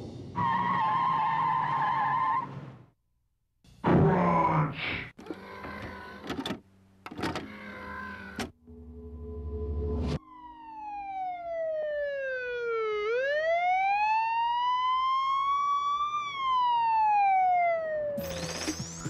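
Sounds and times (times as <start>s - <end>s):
siren-like wailing tone: 8.7s - 18.5s.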